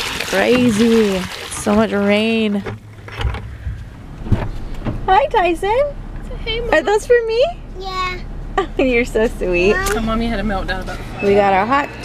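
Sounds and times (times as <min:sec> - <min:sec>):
car cabin rumble: 0:01.7 - 0:11.8.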